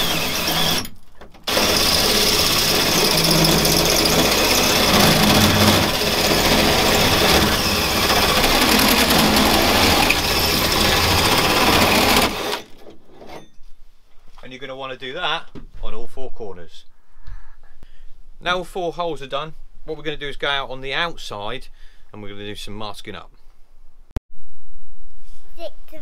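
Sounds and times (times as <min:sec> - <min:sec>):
power drill cutting sheet metal: 0:00.0 - 0:12.8.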